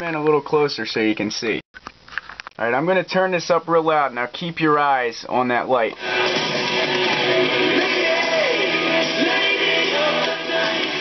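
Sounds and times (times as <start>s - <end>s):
song with singing on radio: 5.9s - 11.0s.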